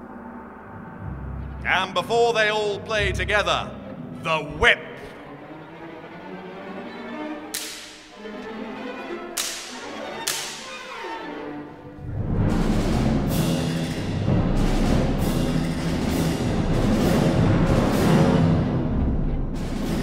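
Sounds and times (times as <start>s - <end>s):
orchestra playing quietly: 1.6s - 20.0s
orchestral whip cracks: 7.5s - 8.1s, 9.3s - 10.9s
percussion section with timpani: 12.0s - 20.0s.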